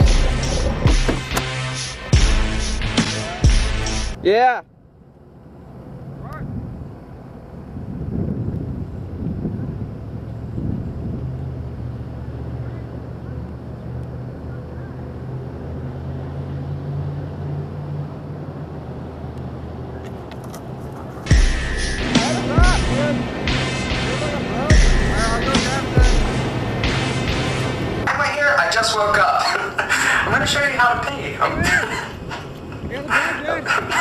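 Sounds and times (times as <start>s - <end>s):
vehicle engines passing: 0.0s - 34.0s
wind on microphone: 6.0s - 12.0s, 30.1s - 34.0s.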